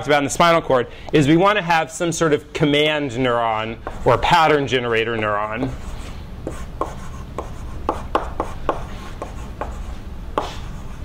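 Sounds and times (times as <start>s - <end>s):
chalk tapping and scratching on blackboard: 3.8s - 11.0s.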